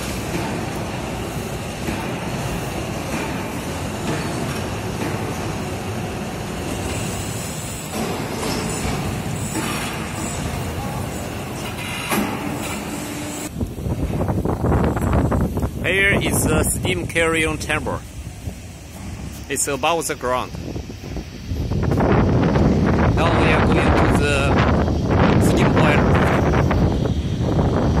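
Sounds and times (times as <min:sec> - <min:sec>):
heavy machinery noise: 0:00.0 - 0:20.5
wind buffeting microphone: 0:00.0 - 0:28.0.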